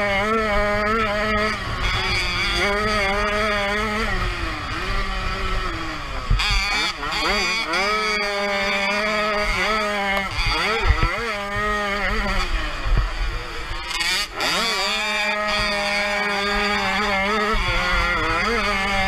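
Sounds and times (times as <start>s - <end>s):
two-stroke motorcycle engine revving: 0.0s - 19.0s.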